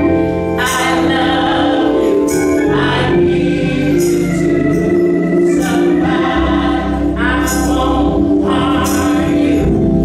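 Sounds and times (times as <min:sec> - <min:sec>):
group gospel singing: 0:00.0 - 0:10.0.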